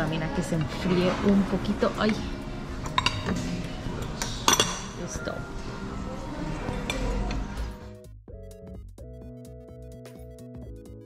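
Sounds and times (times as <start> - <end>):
plates and cutlery clinking: 2.1 - 5.2, 6.5 - 7.7.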